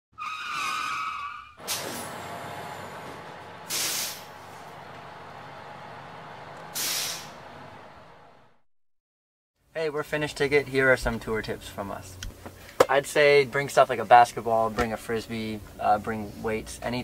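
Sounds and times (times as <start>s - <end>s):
brake squeal: 0.1s - 8.2s
air brake hisses: 1.6s - 4.9s, 6.6s - 7.5s
bus engine idling: 1.6s - 8.6s.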